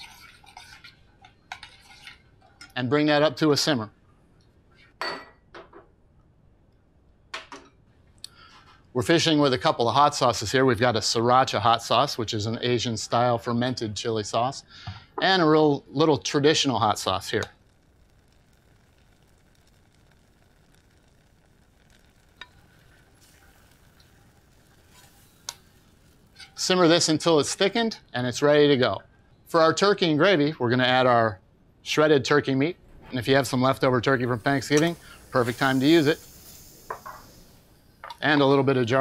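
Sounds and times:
metal spoon stirring in saucepan: 0.0s - 2.8s, 17.4s - 26.8s
simmering pot hiss: 0.0s - 4.9s, 8.2s - 29.1s, 32.2s - 39.0s.

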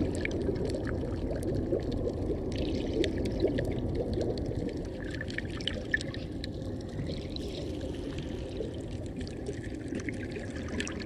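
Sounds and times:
faint clicks and crackles: 0.0s - 11.0s.

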